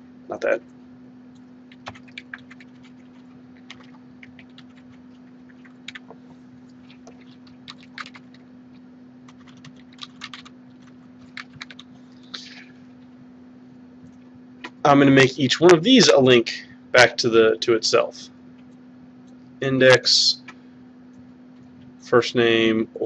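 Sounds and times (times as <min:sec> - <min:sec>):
faint steady hum: 0:00.0 - 0:23.0
computer keyboard typing: 0:01.7 - 0:08.4, 0:09.3 - 0:11.9.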